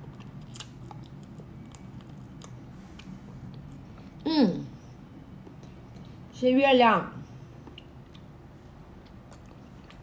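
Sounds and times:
faint low hum: 0:00.0 - 0:10.0
person gnawing chicken foot: 0:00.1 - 0:03.8.

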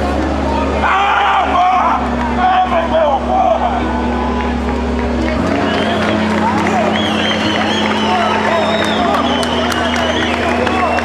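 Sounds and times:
crowd shouting: 0:00.0 - 0:11.0
steady low hum: 0:00.0 - 0:11.0.

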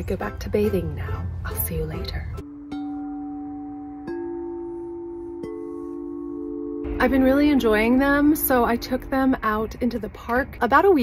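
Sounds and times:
singing bowls ringing: 0:02.5 - 0:10.0.

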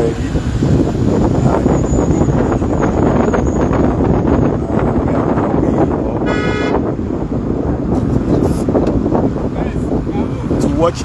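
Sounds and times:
traffic rumble: 0:00.0 - 0:11.0
wind on microphone: 0:00.0 - 0:11.0
vehicle horn honk: 0:06.2 - 0:06.9.

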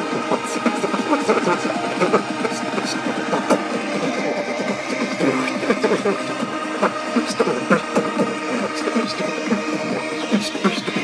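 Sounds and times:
beatboxing: 0:00.0 - 0:11.0.

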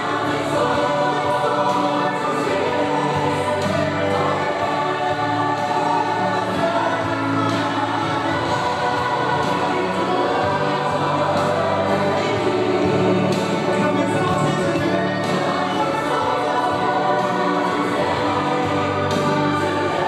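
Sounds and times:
group singing gospel song: 0:00.0 - 0:20.0.

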